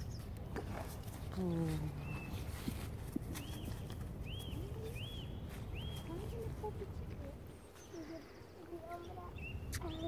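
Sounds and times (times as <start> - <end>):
bird chirping: 1.5 - 6.6, 7.5 - 10.0.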